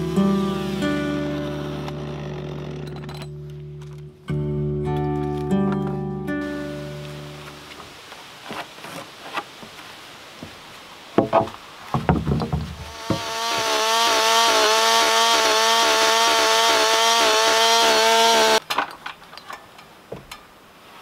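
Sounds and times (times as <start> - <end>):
chainsaw cutting plank: 0.0 - 3.3, 12.0 - 18.6
board knocks: 11.2 - 13.7.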